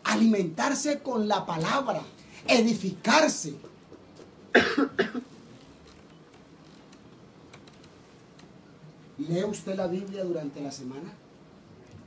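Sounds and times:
speech: 0:00.0 - 0:03.7, 0:09.2 - 0:11.2
person coughing: 0:04.5 - 0:05.3.

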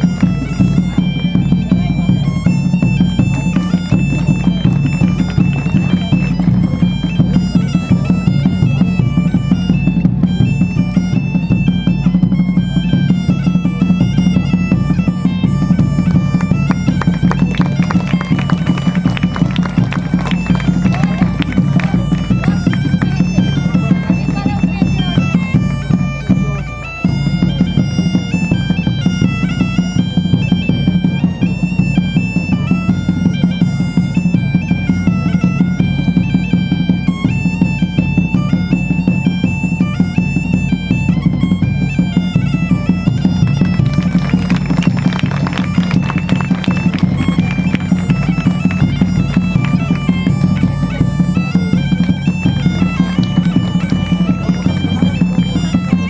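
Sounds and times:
bagpipes playing a melody: 0:00.0 - 0:56.0
large drums beating: 0:00.0 - 0:56.0.

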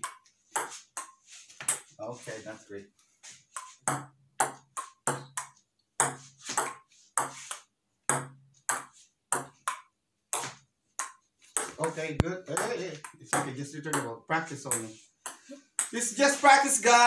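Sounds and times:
ping-pong ball clicking on table: 0:08.1 - 0:14.0.

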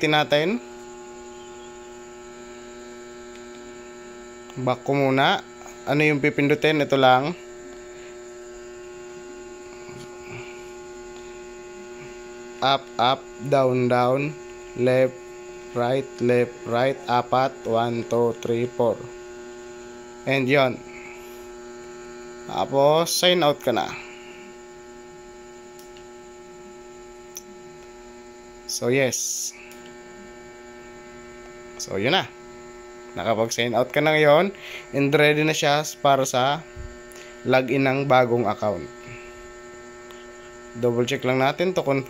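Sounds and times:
steady electrical hum: 0:00.0 - 0:42.0.

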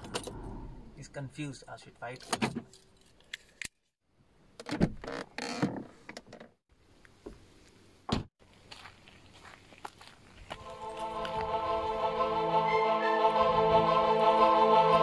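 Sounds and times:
orchestral music with strings: 0:10.6 - 0:15.0.

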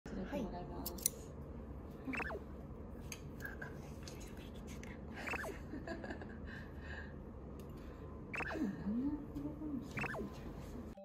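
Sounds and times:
scissors snipping hair: 0:00.8 - 0:01.2.

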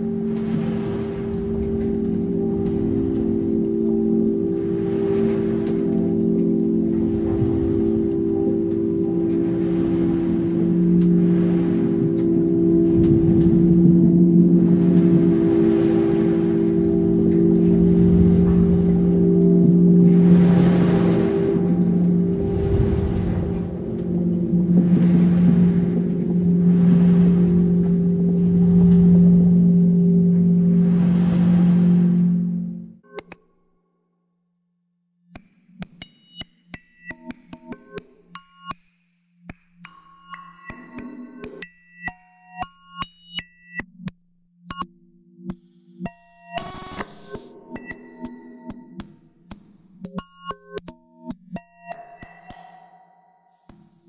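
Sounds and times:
low ambient drone: 0:00.0 - 0:33.0, 0:50.4 - 0:54.0.

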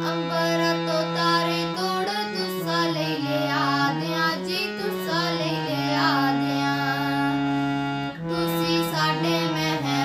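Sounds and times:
girl singing: 0:00.0 - 0:10.0
harmonium chords: 0:00.0 - 0:10.0.

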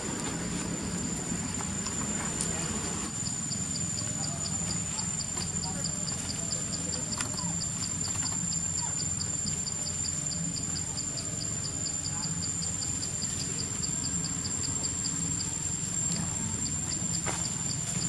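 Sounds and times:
insects chirping: 0:00.0 - 0:18.0.

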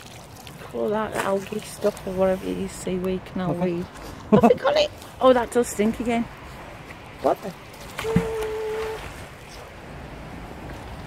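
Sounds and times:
water background: 0:00.0 - 0:11.0.

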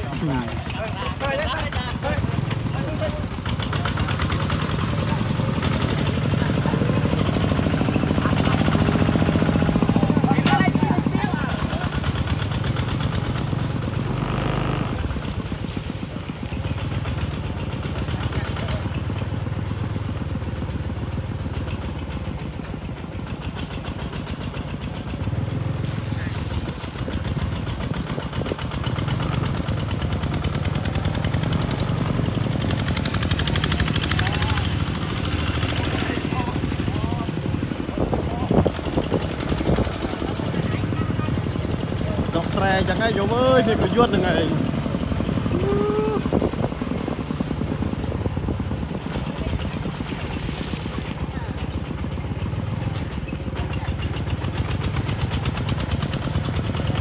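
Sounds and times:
people talking: 0:00.0 - 0:12.4, 0:33.6 - 0:44.7, 0:45.5 - 0:46.3, 0:49.0 - 0:54.6
diesel tractor engine running: 0:00.0 - 0:57.0.

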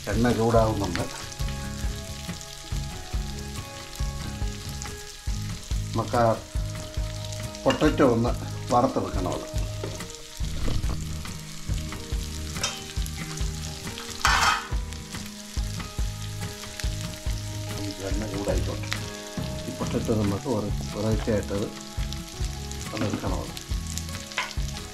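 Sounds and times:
vegetables sizzling in frying pan: 0:00.0 - 0:24.9.

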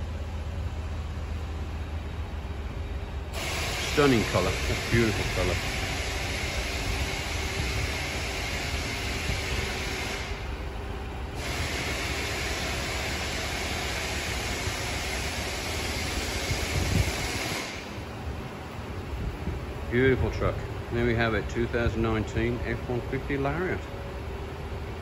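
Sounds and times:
loud hiss: 0:03.3 - 0:10.5, 0:11.4 - 0:18.0.

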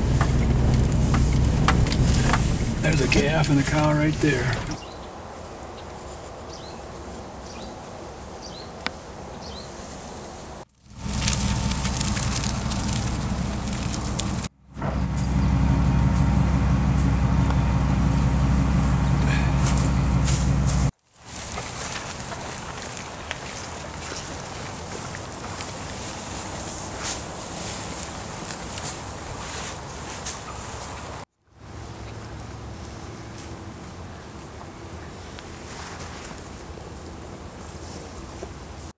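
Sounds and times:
truck engine running: 0:00.0 - 0:04.8, 0:10.7 - 0:20.9
wind noise: 0:00.0 - 0:04.8.

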